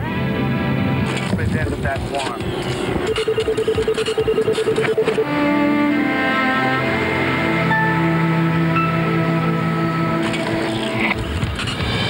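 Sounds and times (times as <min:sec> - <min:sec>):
news theme music: 0:00.0 - 0:12.0
sustained electronic chord: 0:02.4 - 0:11.5.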